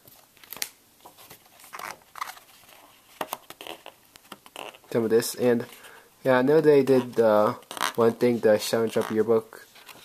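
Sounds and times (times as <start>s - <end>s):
magazine paper rustling: 0.0s - 4.9s.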